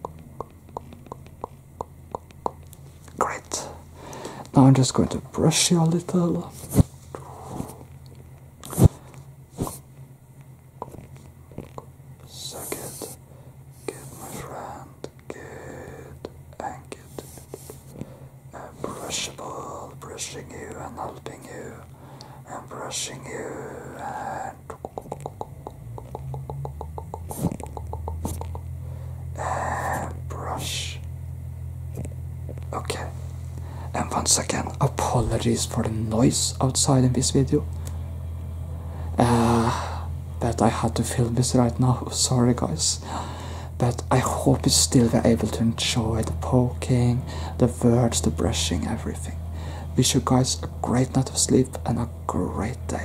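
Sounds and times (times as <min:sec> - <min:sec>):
whisper-like sounds: 0:00.0 - 0:03.8, 0:08.6 - 0:09.8, 0:10.8 - 0:13.2, 0:13.8 - 0:28.6, 0:29.3 - 0:31.1, 0:32.0 - 0:33.2, 0:33.9 - 0:36.8
low hum from outside: 0:00.0 - 0:53.0
brushing on microphone: 0:27.3 - 0:27.6.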